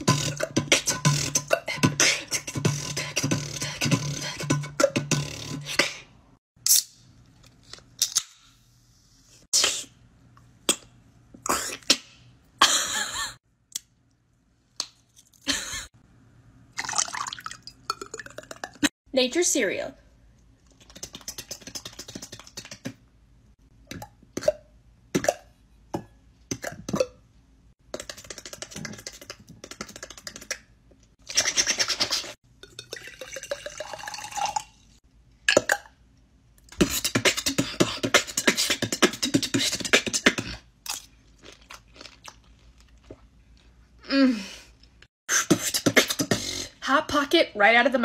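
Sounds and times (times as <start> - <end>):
lip smacks: 13.7 - 14.2, 20.6 - 23.0
person chewing and crunching: 40.4 - 43.8.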